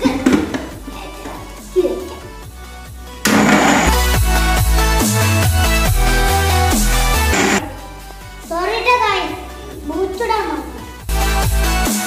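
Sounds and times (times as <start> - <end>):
electric blender running: 3.3 - 4.0, 7.2 - 7.6
electronic music with heavy bass: 3.3 - 7.6.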